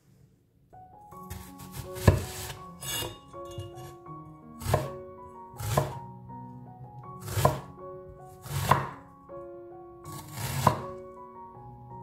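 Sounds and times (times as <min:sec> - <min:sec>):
background music: 0:00.8 - 0:12.0.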